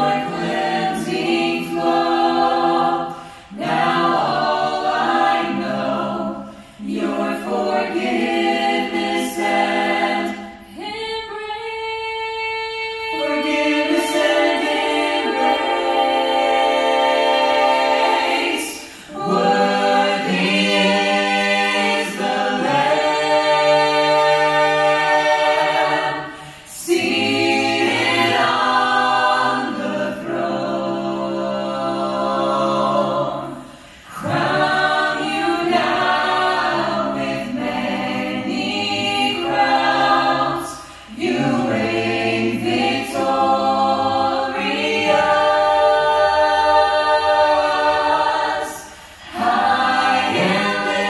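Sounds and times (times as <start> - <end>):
a cappella ensemble singing chords: 0.0 - 51.0.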